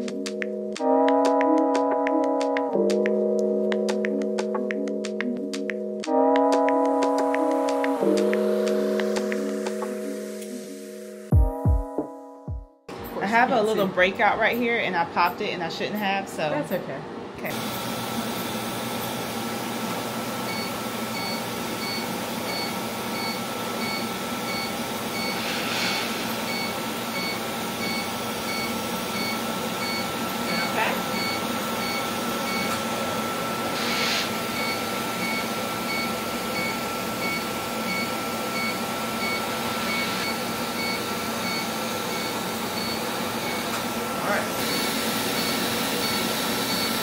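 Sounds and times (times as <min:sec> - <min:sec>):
air rushing from hose: 0:25.2 - 0:26.4, 0:33.7 - 0:34.5
rapid regular beeping: 0:26.5 - 0:32.7, 0:34.5 - 0:43.7.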